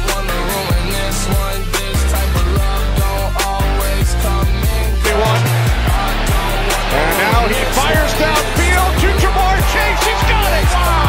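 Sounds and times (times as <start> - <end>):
background music with heavy beat: 0.0 - 11.0.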